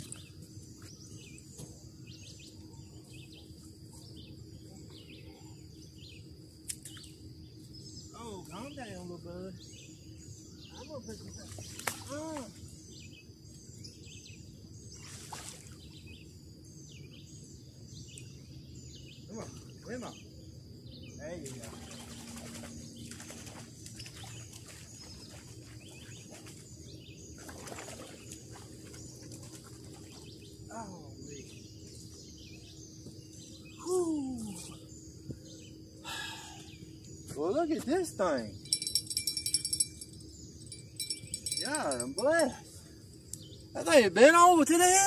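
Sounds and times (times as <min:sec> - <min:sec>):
songbirds chirping: 0:00.0 - 0:45.0.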